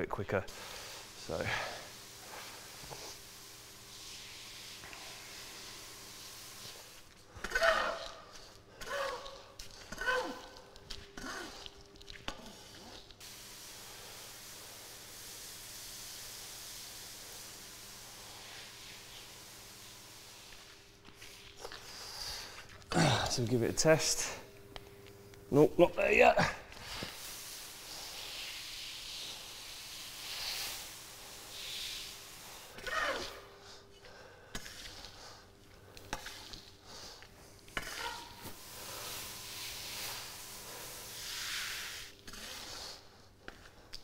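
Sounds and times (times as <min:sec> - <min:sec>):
faint steady hiss: 0:00.0 - 0:44.0
shovel scraping damp sawdust: 0:37.8 - 0:43.1.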